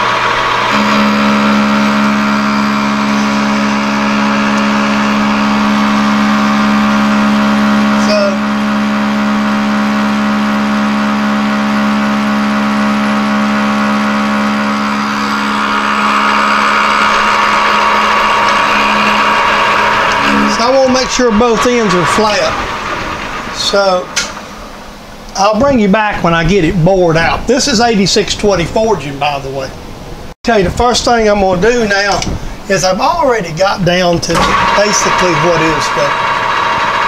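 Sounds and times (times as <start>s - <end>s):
lathe motor and gearbox hum: 0.0s - 25.9s, 31.3s - 37.0s.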